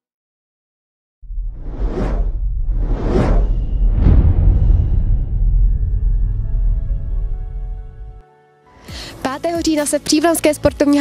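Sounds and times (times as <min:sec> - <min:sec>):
deep rumble: 0:01.2 - 0:08.2
whooshes: 0:01.2 - 0:08.2.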